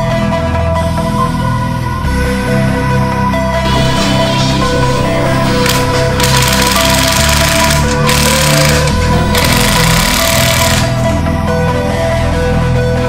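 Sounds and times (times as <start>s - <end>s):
electronic background music: 0.0s - 13.0s
cordless power tool rattling: 5.6s - 11.1s.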